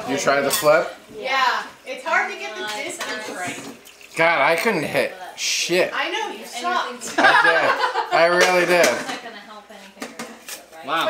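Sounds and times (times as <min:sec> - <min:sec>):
dishes clinking: 0:00.4 - 0:00.8, 0:08.3 - 0:09.2.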